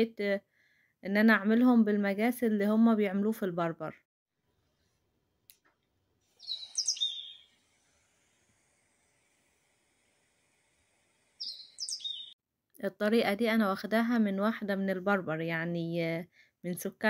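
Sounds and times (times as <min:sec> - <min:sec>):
bird chirping: 0:06.3 - 0:07.7, 0:11.4 - 0:12.4.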